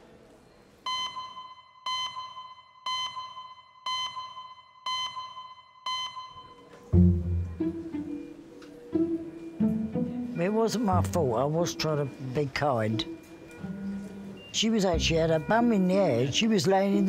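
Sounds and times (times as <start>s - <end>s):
short electronic beeps: 0.9s - 6.6s
deep musical note: 6.9s - 8.4s.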